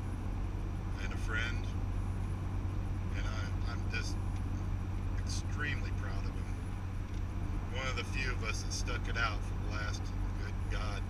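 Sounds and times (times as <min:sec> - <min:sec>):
car road and engine drone: 0:00.0 - 0:11.0
driver's voice: 0:00.9 - 0:01.8, 0:03.1 - 0:04.3, 0:05.1 - 0:06.7, 0:07.6 - 0:11.0.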